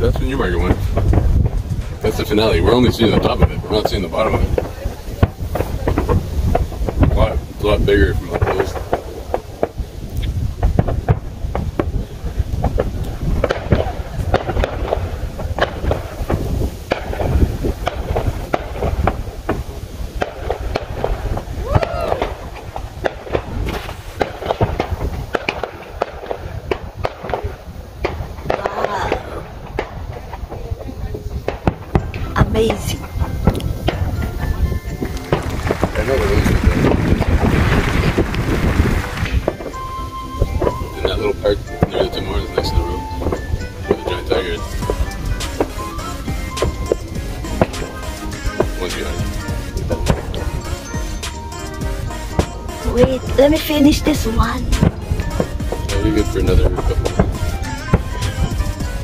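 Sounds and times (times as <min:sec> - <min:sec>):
distant fireworks popping and booming: 0:00.0 - 0:59.0.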